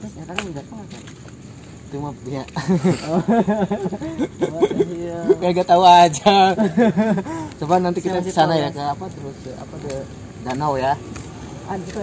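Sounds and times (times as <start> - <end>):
men talking: 0.0 - 12.0
men chuckling: 2.6 - 5.6, 6.4 - 7.6.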